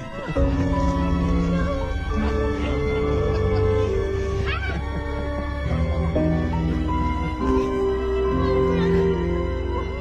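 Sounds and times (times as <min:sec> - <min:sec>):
dog whining: 0:00.0 - 0:05.2
background music with held notes: 0:00.0 - 0:10.0.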